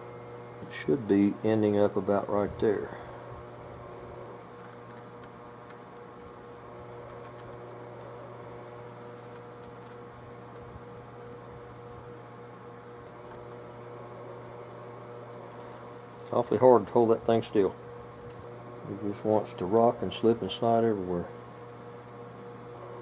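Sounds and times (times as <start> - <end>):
low workshop hum: 0.0 - 23.0.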